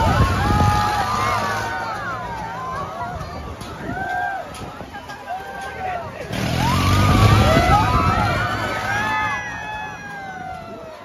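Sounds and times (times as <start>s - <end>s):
riders screaming and shouting: 0.0s - 11.0s
rushing noise of ride: 0.0s - 11.0s.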